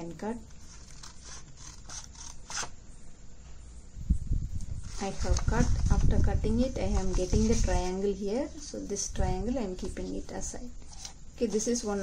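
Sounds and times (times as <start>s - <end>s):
paper rustling: 4.8s - 8.0s.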